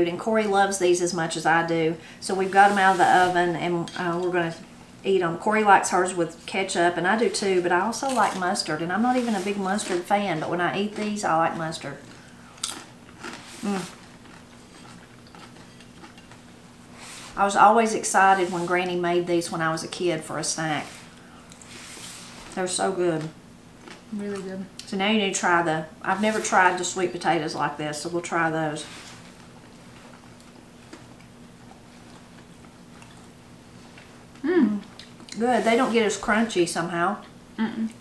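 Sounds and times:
low hum of room tone: 0:00.0 - 0:38.0
people chewing: 0:10.9 - 0:16.4, 0:23.8 - 0:24.9, 0:29.9 - 0:34.1
person chewing potato chips: 0:12.0 - 0:16.4, 0:23.8 - 0:24.1.

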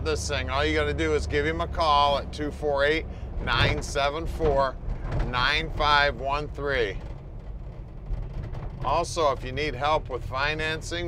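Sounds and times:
man talking: 0:00.0 - 0:07.0, 0:08.8 - 0:11.0
car engine drone: 0:00.0 - 0:11.0
road noise: 0:00.0 - 0:11.0.

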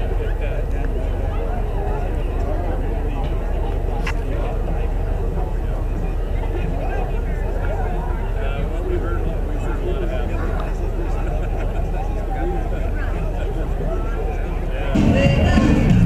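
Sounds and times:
people chattering: 0:00.0 - 0:16.0.

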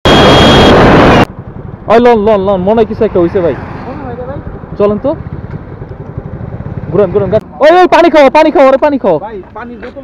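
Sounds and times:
road noise: 0:00.1 - 0:10.0
motorcycle engine: 0:01.2 - 0:08.4.

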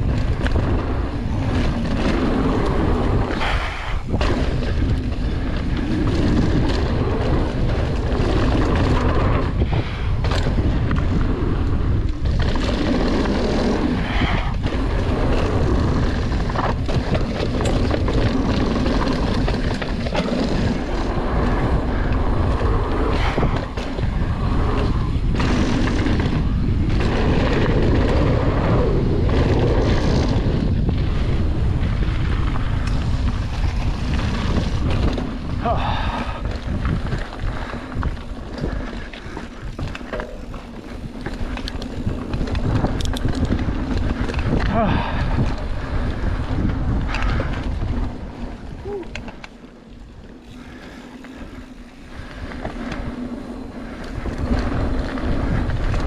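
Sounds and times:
tyres rolling on dirt: 0:00.0 - 0:56.0
wind buffeting microphone: 0:00.0 - 0:56.0.

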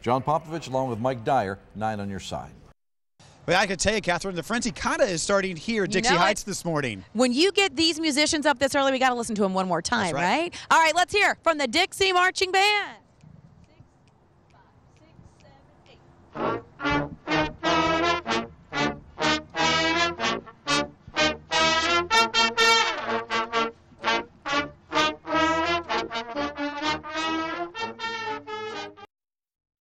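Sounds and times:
marching band brass playing: 0:16.3 - 0:29.1.

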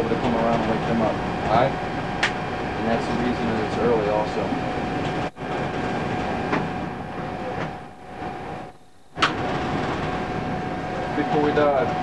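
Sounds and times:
ventilation and machinery hum: 0:00.0 - 0:12.0.

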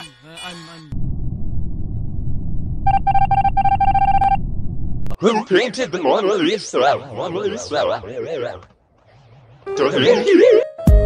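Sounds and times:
steady low rumble: 0:00.9 - 0:05.2.

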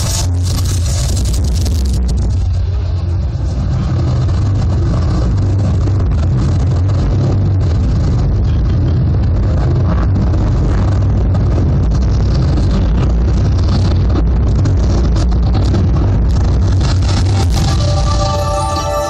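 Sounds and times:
low rumble over loudspeakers: 0:00.0 - 0:19.0.

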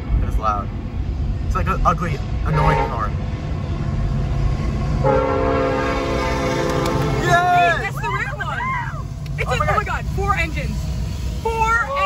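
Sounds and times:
train rumbling past: 0:00.0 - 0:12.0
locomotive air horn: 0:02.5 - 0:03.1, 0:05.0 - 0:07.7.

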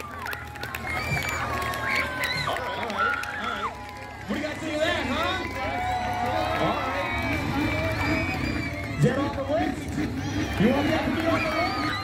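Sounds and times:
people talking: 0:04.3 - 0:12.0.

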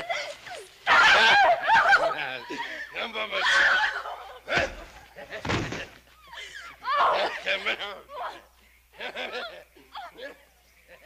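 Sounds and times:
men laughing: 0:01.0 - 0:08.3, 0:08.9 - 0:11.0.

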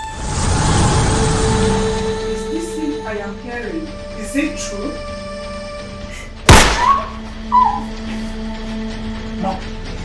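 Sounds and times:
loud gunshot: 0:06.5 - 0:07.1.

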